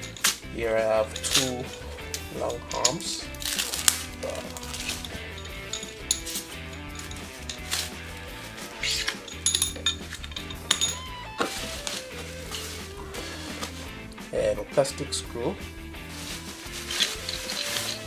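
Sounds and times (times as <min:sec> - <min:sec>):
light clinks of parts: 0:00.0 - 0:13.9, 0:16.2 - 0:18.0
background music: 0:00.0 - 0:18.0
plastic bags crinkling: 0:02.4 - 0:14.0, 0:16.0 - 0:18.0.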